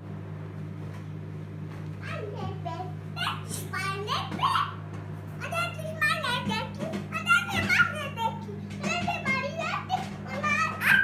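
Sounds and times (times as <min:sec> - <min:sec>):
steady low hum: 0:00.0 - 0:11.0
child vocalizing and squealing: 0:10.5 - 0:11.0.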